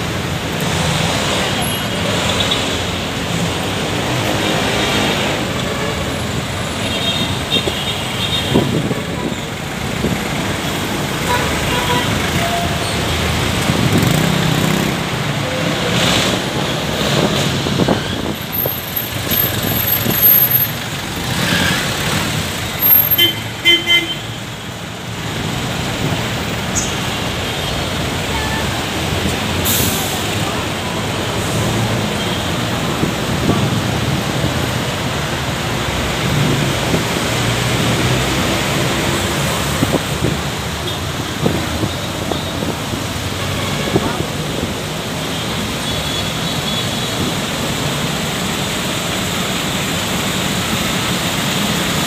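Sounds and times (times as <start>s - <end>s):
traffic passing close by: 0.0s - 52.0s.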